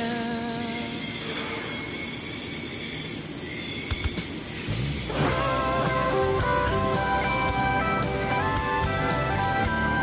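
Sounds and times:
welding hiss: 0.0s - 6.8s.

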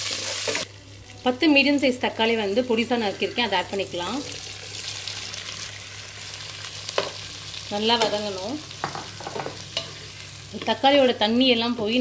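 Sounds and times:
tomatoes sizzling in hot oil: 0.0s - 12.0s.

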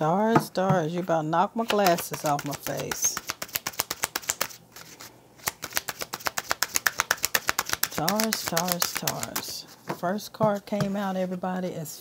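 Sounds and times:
cards being shuffled by hand: 1.6s - 9.7s.

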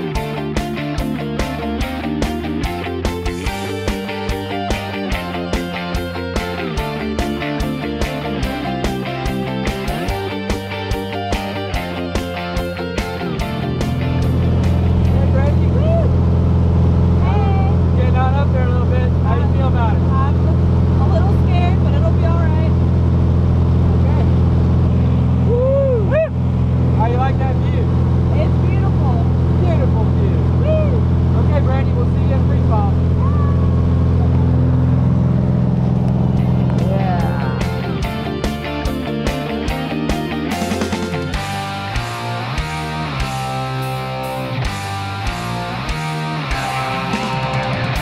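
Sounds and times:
plane engine and propeller droning: 11.1s - 38.4s
voices talking: 15.0s - 16.3s, 36.4s - 38.2s.

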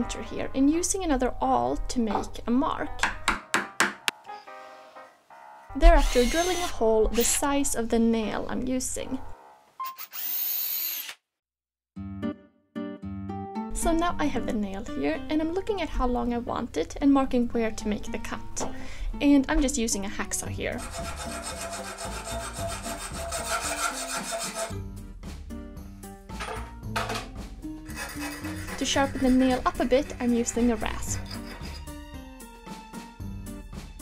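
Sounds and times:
electric drill whining: 5.9s - 7.4s, 9.8s - 11.2s
hacksaw cutting metal: 20.8s - 24.7s, 27.9s - 32.0s.

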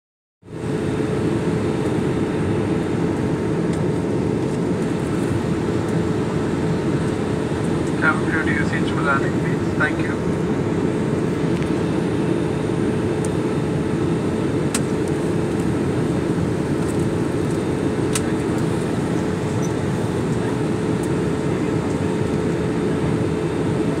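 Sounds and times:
jet airliner cabin noise: 0.5s - 24.0s.

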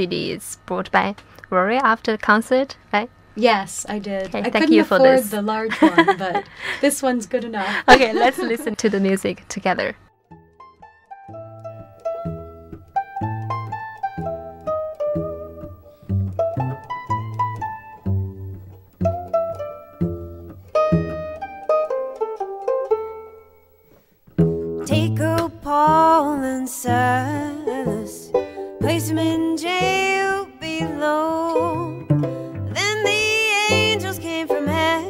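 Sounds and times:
plucked string melody: 10.1s - 35.0s
low bass notes: 11.2s - 21.7s, 30.8s - 35.0s.

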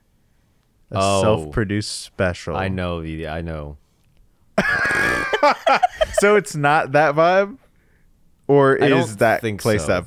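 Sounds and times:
person laughing: 4.6s - 6.4s.

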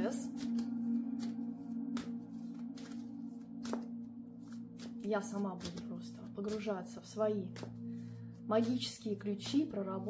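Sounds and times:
cards being shuffled: 0.0s - 9.6s
droning ambient music: 0.0s - 10.0s.

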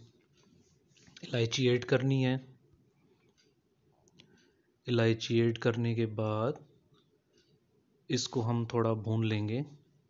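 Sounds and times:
faint clicks: 3.0s - 4.7s.

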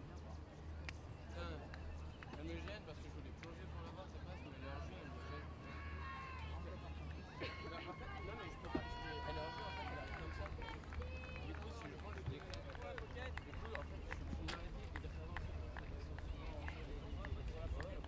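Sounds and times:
people calling out and talking: 0.0s - 18.0s.

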